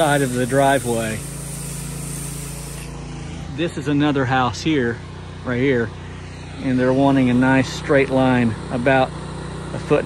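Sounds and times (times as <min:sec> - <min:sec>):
pressure washer spray hissing: 0:00.0 - 0:03.6
machine humming: 0:00.0 - 0:10.0.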